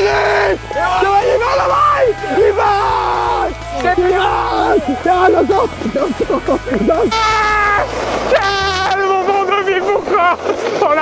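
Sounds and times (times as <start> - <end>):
man shouting excitedly: 0.0 - 5.8.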